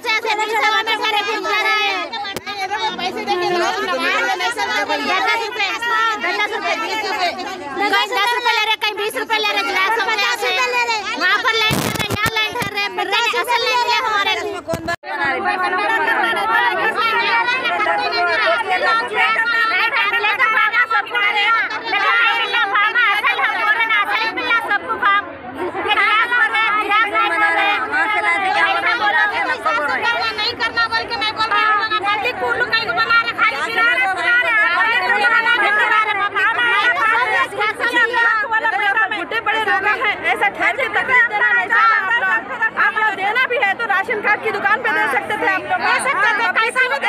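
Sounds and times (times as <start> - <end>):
crowd talking: 0.0 - 47.0.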